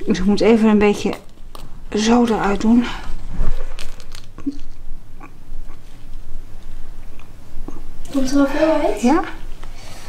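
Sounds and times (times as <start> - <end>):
foil tube crinkling: 1.1 - 4.8
clicks and crackles: 3.7 - 7.3.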